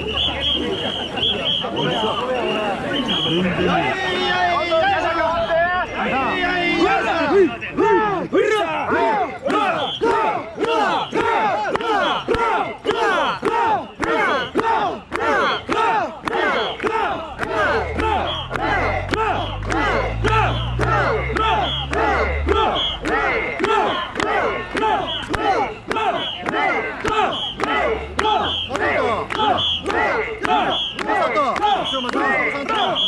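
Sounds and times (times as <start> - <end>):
crowd shouting rhythmic chant: 0.0 - 33.0.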